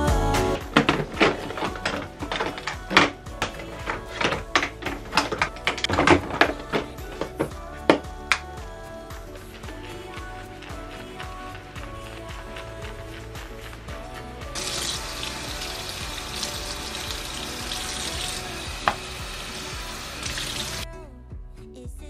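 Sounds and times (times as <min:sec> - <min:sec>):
background music: 0:00.0 - 0:22.0
faucet water splashing into sink: 0:14.6 - 0:20.8.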